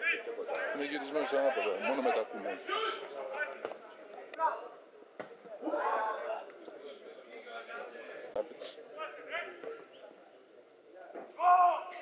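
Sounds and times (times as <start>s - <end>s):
loud short shout: 11.4s - 12.0s.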